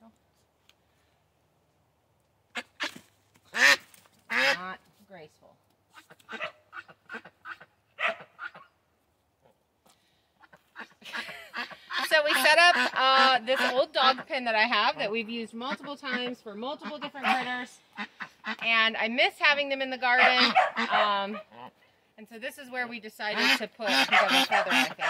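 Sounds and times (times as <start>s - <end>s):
duck quacking loudly: 2.5s - 4.8s, 6.0s - 8.7s, 10.4s - 15.0s, 15.6s - 18.7s, 20.2s - 21.7s, 23.3s - 25.0s
woman speaking: 4.5s - 5.6s, 12.0s - 17.8s, 18.6s - 21.4s, 22.2s - 25.0s.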